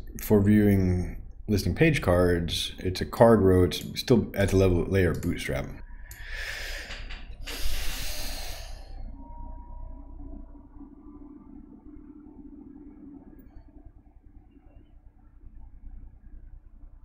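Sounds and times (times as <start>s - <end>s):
faint low hum: 0.0s - 17.0s
man exhaling breathily: 6.1s - 9.1s.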